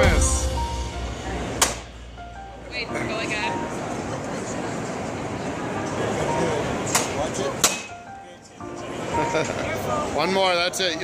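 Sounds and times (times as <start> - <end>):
bat striking metal mesh screen: 1.6 - 2.1.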